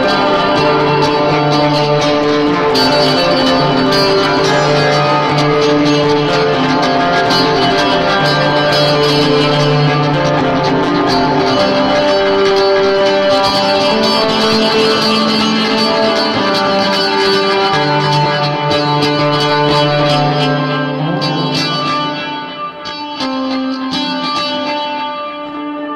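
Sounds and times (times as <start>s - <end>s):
guitars holding sustained notes: 0.0s - 25.9s.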